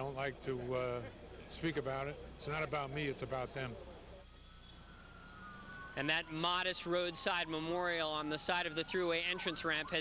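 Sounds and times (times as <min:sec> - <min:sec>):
faint wailing siren: 0:03.2 - 0:10.0.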